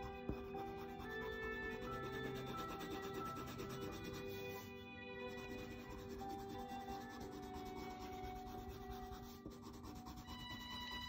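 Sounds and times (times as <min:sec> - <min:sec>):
pencil rubbing on paper: 0:00.0 - 0:04.7, 0:05.3 - 0:11.0
faint background music: 0:00.0 - 0:11.0.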